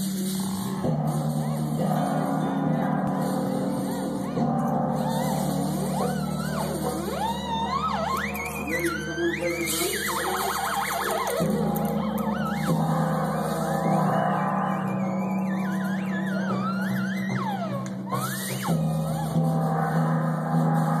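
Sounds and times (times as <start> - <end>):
low held notes: 0.0 - 21.0
theremin gliding pitch: 5.0 - 21.0.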